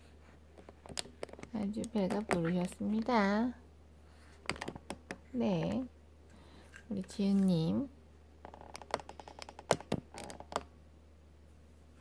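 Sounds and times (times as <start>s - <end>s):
fingers tapping plastic bottle: 8.5s - 10.7s.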